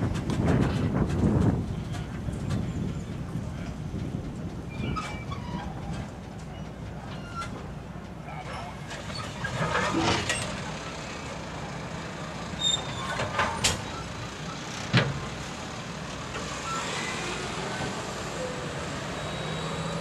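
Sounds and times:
train coaches rumbling: 0.0s - 20.0s.

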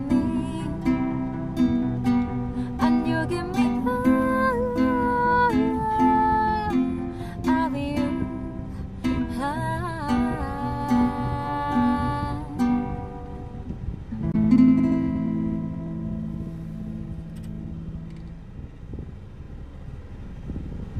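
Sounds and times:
woman singing a slow ballad: 0.0s - 1.4s, 2.3s - 13.3s
acoustic guitar: 0.0s - 19.3s.

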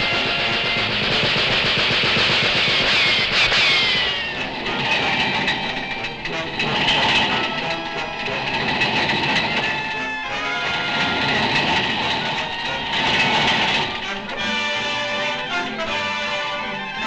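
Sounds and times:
cartoon machine-gun fire: 0.0s - 6.0s
orchestral score: 0.0s - 17.0s.

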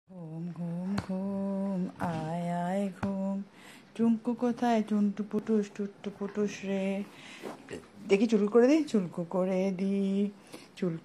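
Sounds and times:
woman humming: 0.1s - 3.4s.

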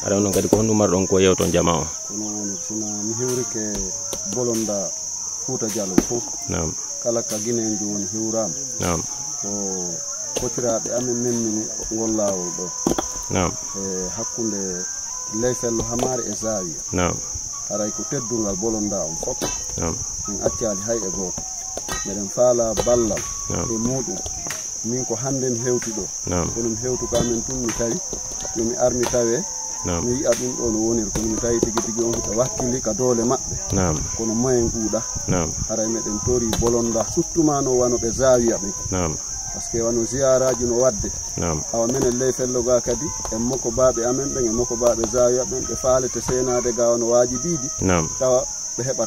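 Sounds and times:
man talking: 0.0s - 21.4s, 22.0s - 49.0s
insects trilling: 0.0s - 49.0s.

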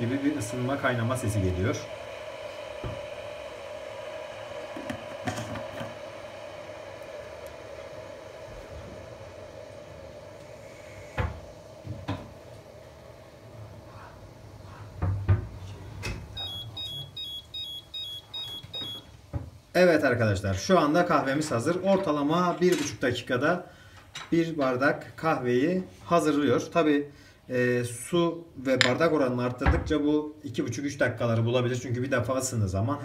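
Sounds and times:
coffee machine humming: 0.0s - 19.4s.

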